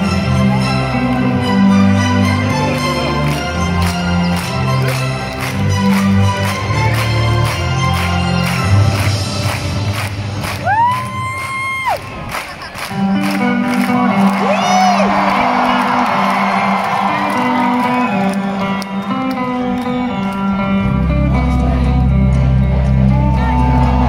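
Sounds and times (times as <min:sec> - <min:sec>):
crowd cheering: 0:02.7 - 0:20.7, 0:23.1 - 0:24.0
live rock band playing: 0:12.9 - 0:16.0.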